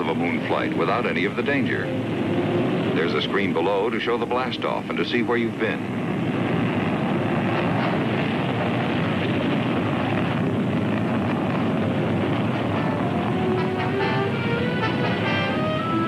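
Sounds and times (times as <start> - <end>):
orchestral string music: 0.0 - 5.3, 12.4 - 16.0
rocket engine rushing: 0.0 - 16.0.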